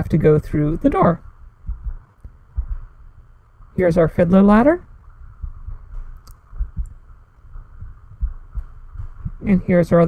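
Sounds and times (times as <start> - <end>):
faint steady hum: 0.0 - 10.0
soft low thumps: 0.0 - 10.0.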